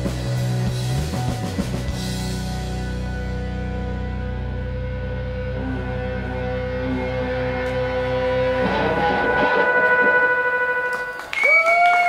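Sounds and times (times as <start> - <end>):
low drone: 0.0 - 11.4
amplified guitars and keyboard: 0.0 - 11.8.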